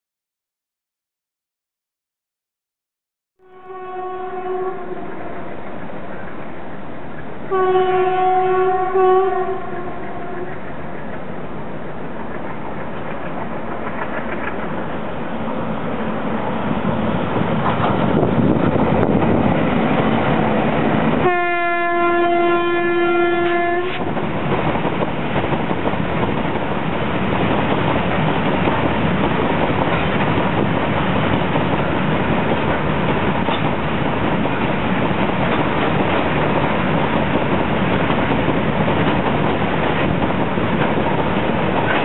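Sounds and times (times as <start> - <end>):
train horn blast: 3.4 - 5.8, 7.5 - 11.0, 21.2 - 24.1
freight train rumbling: 3.4 - 42.0
wagons clickety-clack: 12.2 - 14.8, 27.4 - 42.0.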